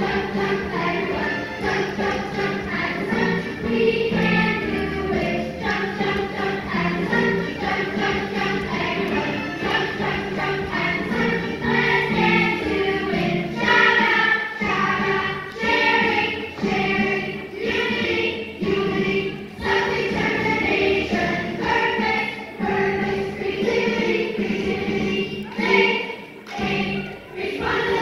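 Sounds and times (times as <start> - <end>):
children singing in chorus: 0.0 - 28.0.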